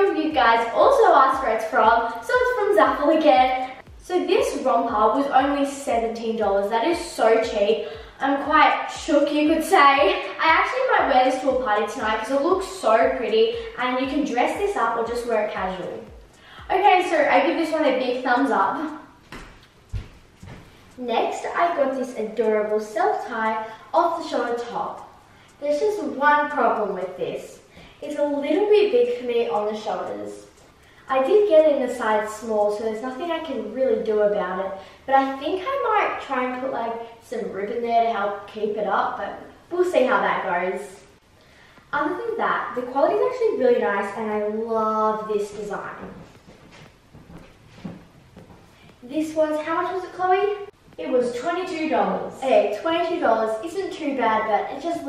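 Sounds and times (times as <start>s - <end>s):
soft low thumps: 1.8s - 4.2s, 19.0s - 21.0s, 45.5s - 49.0s
clothing rustling: 19.2s - 20.9s, 46.0s - 48.8s.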